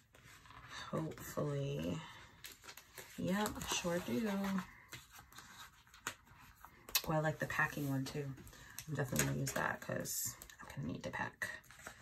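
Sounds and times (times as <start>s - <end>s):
paper rustling: 0.0s - 9.9s.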